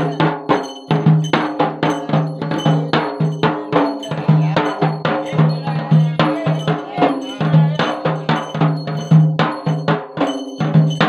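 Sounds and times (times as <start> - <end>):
barrel drum drumming: 0.0 - 11.0.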